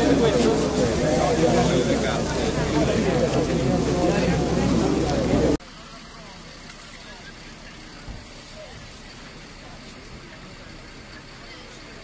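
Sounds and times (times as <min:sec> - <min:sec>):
faint voices: 0:00.0 - 0:12.0
vehicle engines running: 0:00.0 - 0:12.0.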